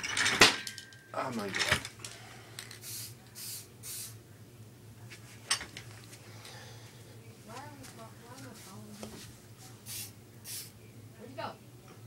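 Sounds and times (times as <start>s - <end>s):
spray paint can hissing: 2.8s - 4.2s, 9.8s - 10.7s.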